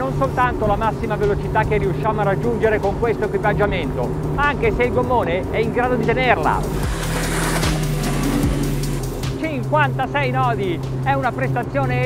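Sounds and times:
background music: 0:00.0 - 0:12.0
outboard engines at full throttle: 0:00.0 - 0:12.0.

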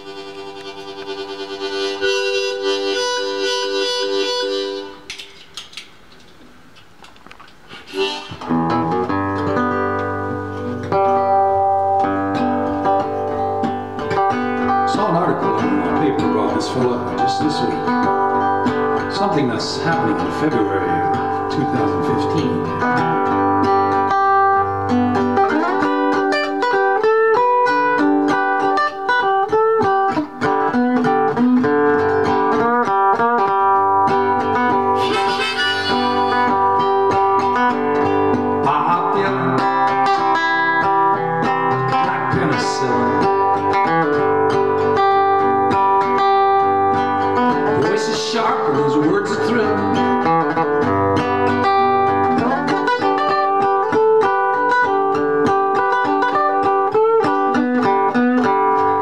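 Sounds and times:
harmonica melody: 0:00.0 - 0:05.2, 0:07.7 - 0:09.6, 0:34.8 - 0:38.2
acoustic guitar: 0:00.0 - 0:59.0.

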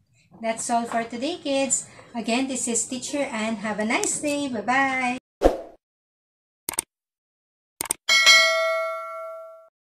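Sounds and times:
notification bell ding: 0:08.1 - 0:09.7.

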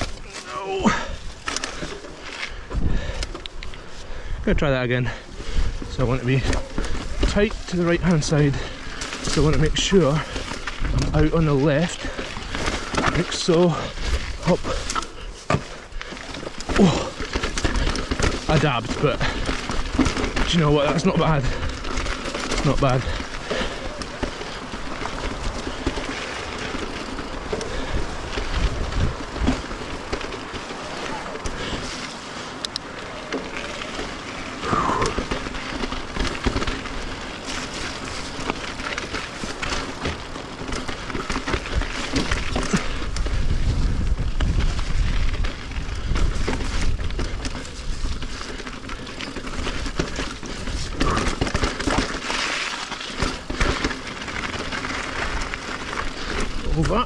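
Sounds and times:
bike rattling: 0:00.0 - 0:57.0
bike tyres crunching over stones: 0:00.0 - 0:57.0
wind rumble on microphone: 0:25.2 - 0:30.1, 0:41.6 - 0:48.6.

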